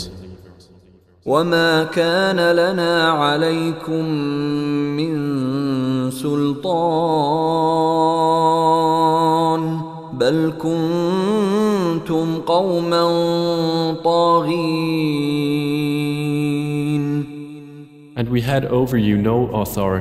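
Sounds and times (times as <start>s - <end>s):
man chanting: 0.0s - 20.0s.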